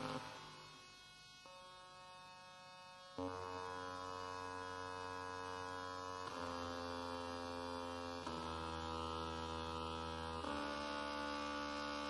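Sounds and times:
buzzy electronic drone clusters: 0.0 - 0.8.

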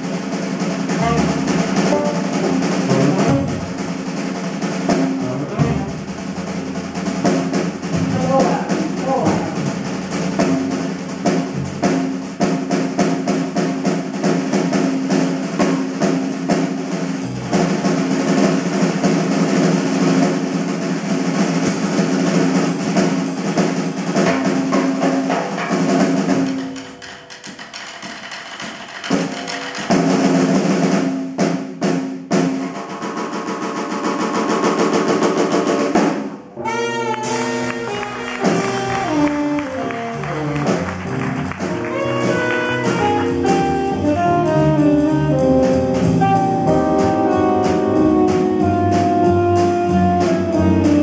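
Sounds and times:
double bass: 0.0 - 25.2, 36.6 - 51.0
drum kit on snare and cymbals: 0.0 - 51.0
tenor saxophone: 0.9 - 2.3, 36.6 - 51.0.

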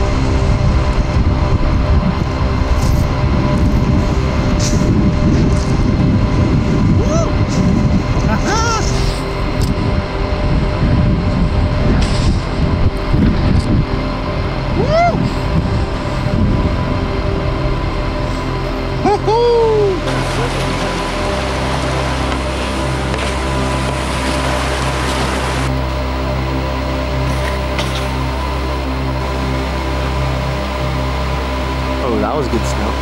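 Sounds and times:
wind rushing over microphone: 0.0 - 19.1
person whooping: 7.0 - 7.4, 8.3 - 9.0, 14.8 - 15.3, 19.0 - 20.5.

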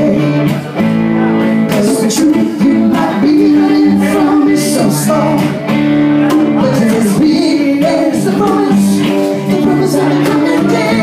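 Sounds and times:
guitars playing chords: 0.0 - 11.0.

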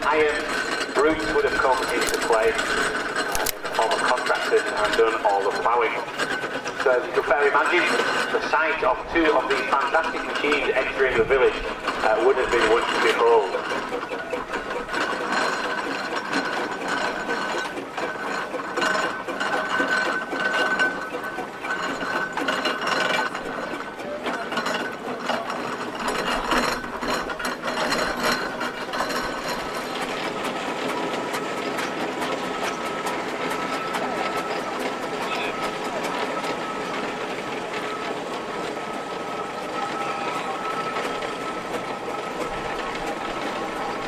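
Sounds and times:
steam engines clanking and rattling: 0.0 - 44.0.

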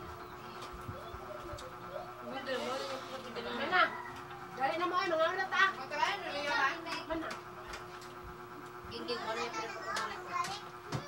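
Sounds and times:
buzzing hum: 0.0 - 11.0.

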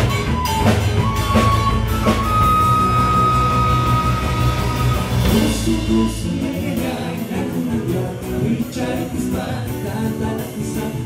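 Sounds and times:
long held high guitar note: 0.0 - 6.4
live rock band playing: 0.0 - 11.0.

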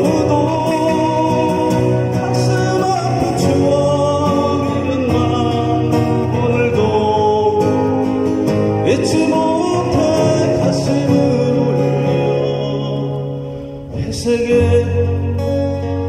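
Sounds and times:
amplified acoustic guitar duo: 0.0 - 16.0.

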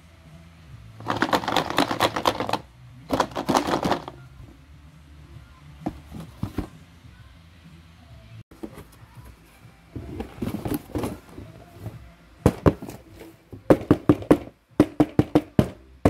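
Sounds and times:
toy packaging clicks and rattles: 1.0 - 4.2.

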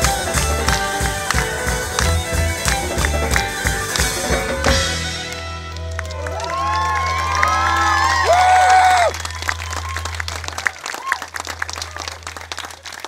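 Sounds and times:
string band playing: 0.0 - 12.9
audience clapping: 0.0 - 13.0.

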